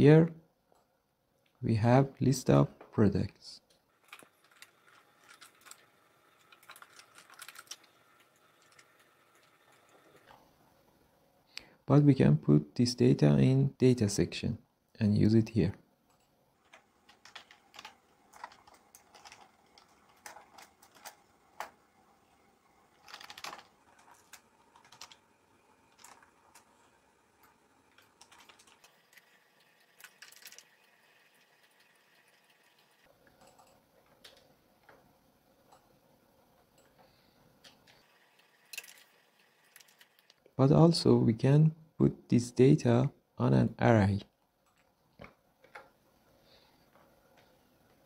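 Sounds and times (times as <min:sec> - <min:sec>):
keyboard typing: 0:16.1 - 0:21.8, 0:23.0 - 0:34.5
faint keyboard clicking: 0:33.2 - 0:35.0.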